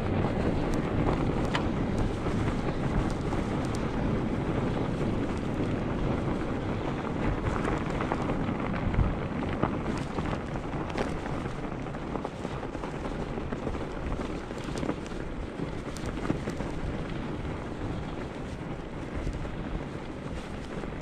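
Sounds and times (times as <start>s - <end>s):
tires rolling on packed snow: 0.0s - 21.0s
wind buffeting microphone: 0.0s - 21.0s
small clicks and crunches: 0.2s - 21.0s.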